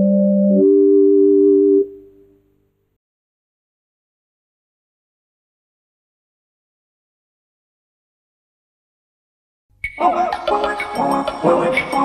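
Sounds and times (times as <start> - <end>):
organ-like keyboard chord: 0.0 - 2.3.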